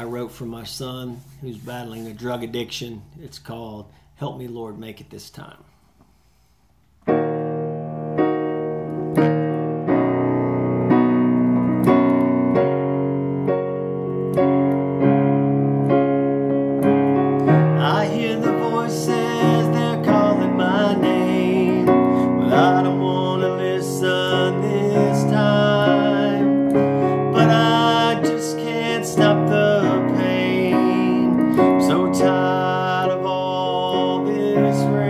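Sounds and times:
piano chords: 7.0 - 35.0.

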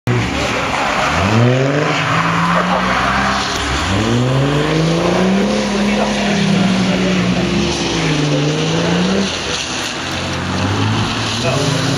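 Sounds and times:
tyres skidding on wet surface: 0.1 - 11.9
car engine revving hard: 0.3 - 11.9.

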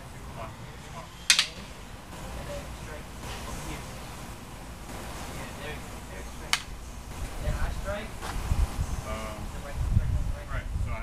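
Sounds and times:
fighting sticks clacking: 1.3 - 1.8.

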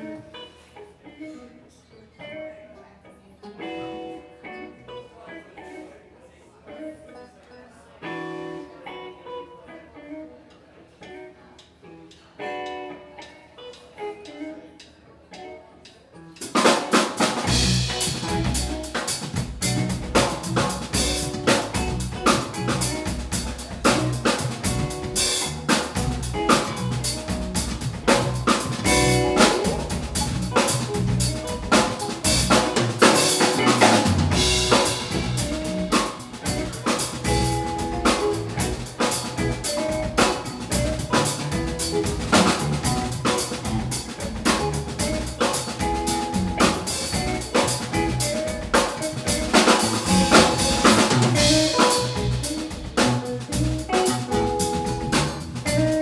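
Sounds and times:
drum kit groove: 14.8 - 56.0
jam band playing: 16.4 - 56.0.

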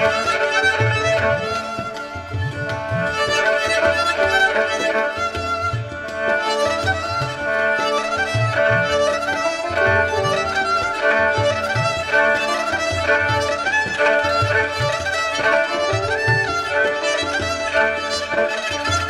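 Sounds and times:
bowed fiddle melody: 0.0 - 19.0
tabla pulse: 0.0 - 19.0.

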